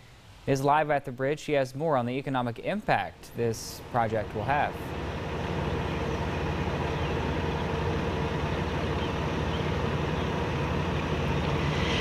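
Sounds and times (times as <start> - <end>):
hiss: 11.5 - 12.0.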